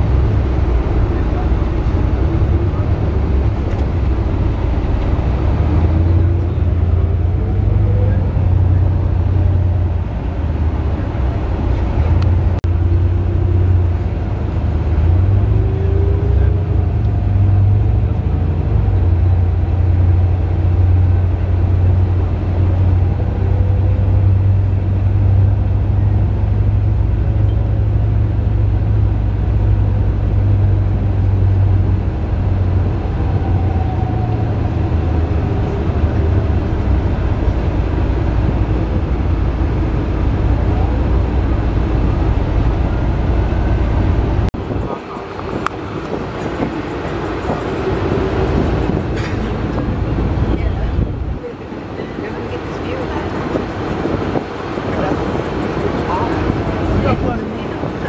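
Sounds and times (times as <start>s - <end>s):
bus engine and road drone: 0.0s - 58.0s.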